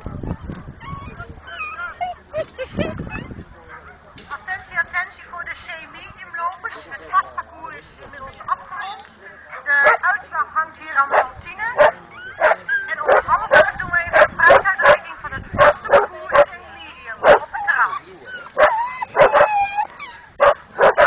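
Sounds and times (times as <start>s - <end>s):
dog high-pitched yips: 0.1s - 3.4s, 12.1s - 13.3s, 17.3s - 21.0s
dog barking: 11.1s - 15.0s, 15.6s - 16.5s, 17.2s - 17.6s, 18.6s - 19.5s, 20.4s - 21.0s.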